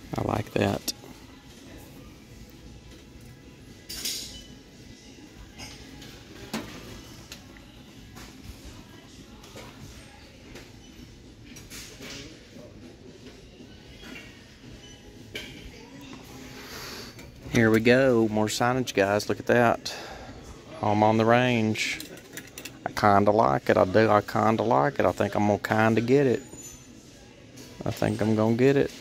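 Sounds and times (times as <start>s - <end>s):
low shop background: 0.0s - 29.0s.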